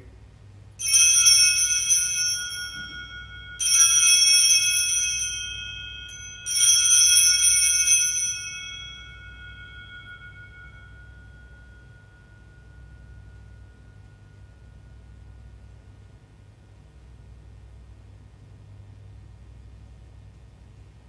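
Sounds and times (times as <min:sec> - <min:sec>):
altar bells ringing: 0:00.8 - 0:16.4.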